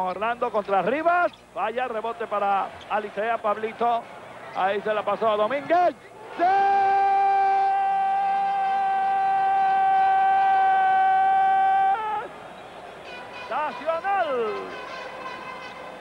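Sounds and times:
loud steady horn note: 13.0 - 16.0.

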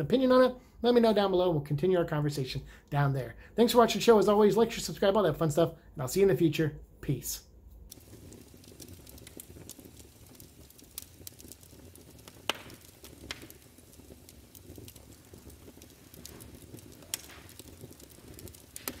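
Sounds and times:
fire crackling in a fireplace: 0.0 - 19.0.

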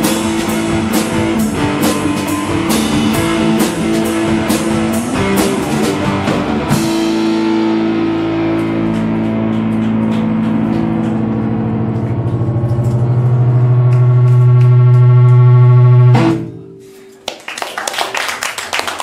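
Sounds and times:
electric guitars and bass chord: 0.0 - 16.8.

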